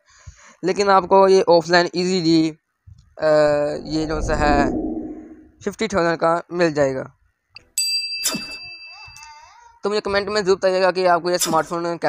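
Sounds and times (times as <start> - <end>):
noisy sweep: 3.4 - 5.5.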